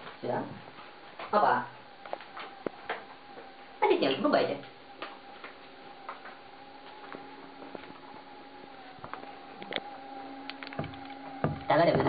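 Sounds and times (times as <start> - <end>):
faint electrical tone: 0.0 - 12.0
sharp ticks: 9.6 - 11.8.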